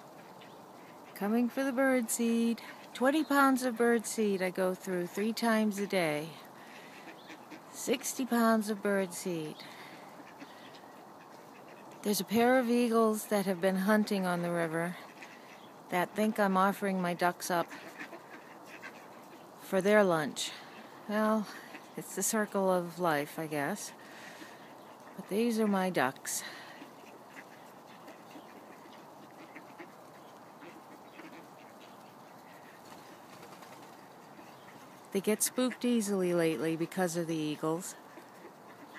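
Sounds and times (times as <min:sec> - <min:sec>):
ducks quacking faintly: 0:00.0 - 0:38.9.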